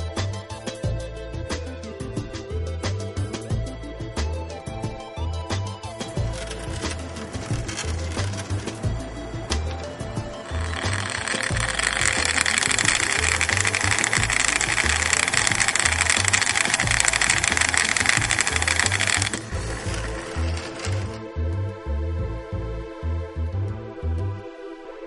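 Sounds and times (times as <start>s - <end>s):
background music with beat: 0.0s - 25.0s
small motor and gear whirring: 6.0s - 21.2s.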